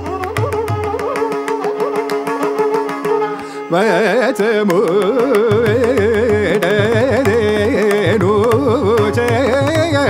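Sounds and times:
mridangam drum strokes: 0.0s - 10.0s
violin melody: 0.0s - 10.0s
person singing ornamented melody: 3.1s - 10.0s.

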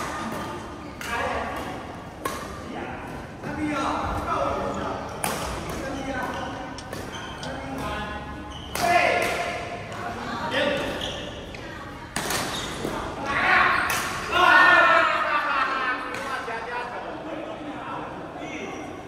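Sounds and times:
rackets striking shuttlecock: 5.2s - 9.8s.

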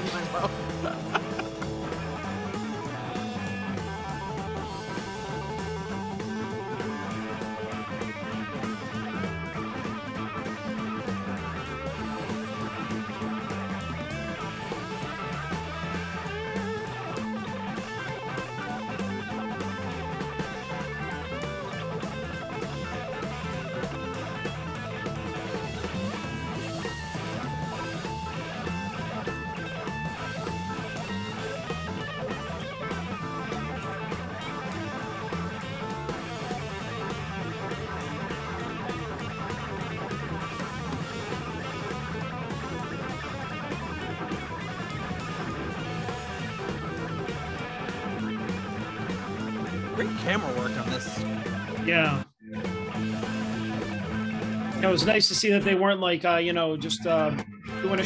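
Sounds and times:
electric guitar solo: 0.0s - 55.6s
bass guitar: 0.0s - 58.0s
drum kit: 0.0s - 58.0s.

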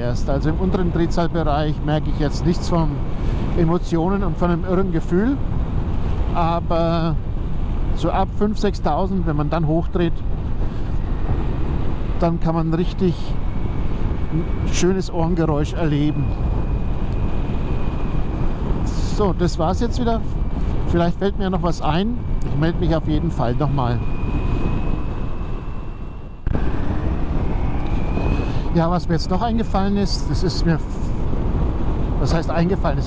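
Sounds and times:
low engine and road rumble: 0.0s - 33.0s
wind rushing over microphone: 0.0s - 33.0s
thin steady whistle: 21.9s - 26.5s, 27.2s - 29.1s.

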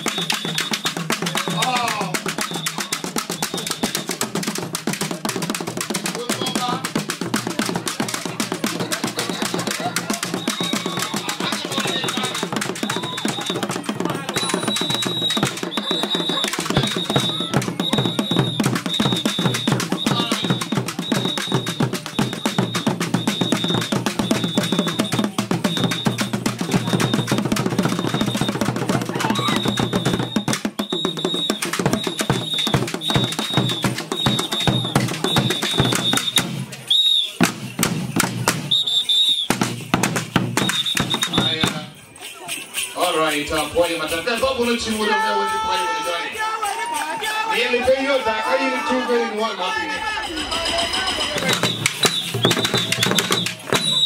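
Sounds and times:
wooden drum beaten with a stick: 0.0s - 36.8s, 37.4s - 38.8s, 39.5s - 41.9s, 50.4s - 54.0s
short high tone: 49.5s - 52.4s.

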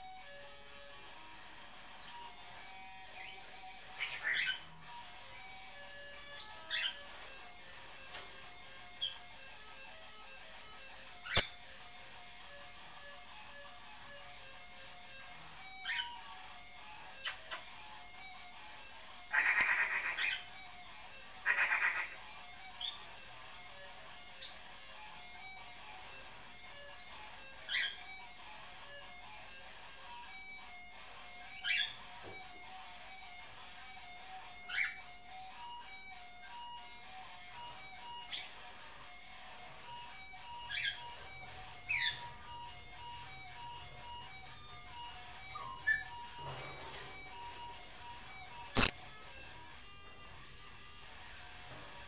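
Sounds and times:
electric guitar with effects: 0.0s - 46.2s, 50.7s - 51.7s
parrot chattering: 3.2s - 4.7s, 6.3s - 7.0s, 15.7s - 16.2s, 19.3s - 20.6s, 21.4s - 23.1s, 26.9s - 28.2s, 31.5s - 32.0s, 34.7s - 35.1s, 40.6s - 41.2s, 41.8s - 42.4s, 45.5s - 46.2s, 48.8s - 49.2s
parrot whistling: 15.7s - 16.2s, 26.9s - 28.1s, 31.4s - 32.0s, 40.6s - 41.2s, 41.8s - 42.3s, 45.0s - 46.3s, 48.7s - 49.2s.

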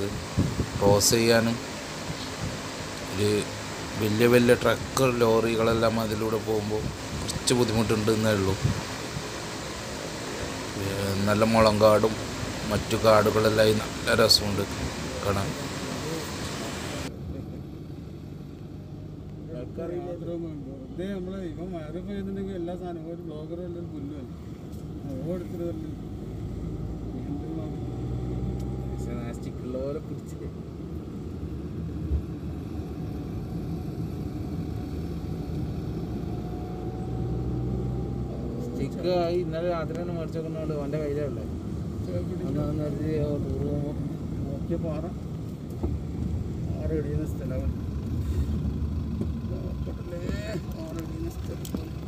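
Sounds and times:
vehicle road noise hiss: 0.0s - 52.0s.

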